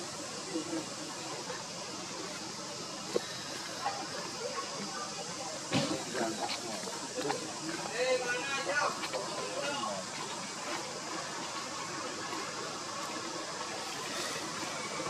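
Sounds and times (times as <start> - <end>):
faint human voices: 0.0 - 15.0
steady hiss: 0.0 - 15.0
thump: 5.7 - 6.1.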